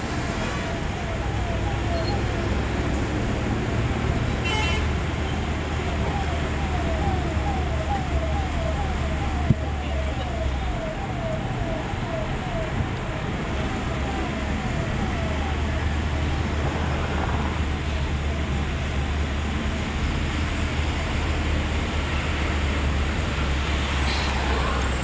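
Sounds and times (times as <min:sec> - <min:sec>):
vehicle road and engine drone: 0:00.0 - 0:25.0.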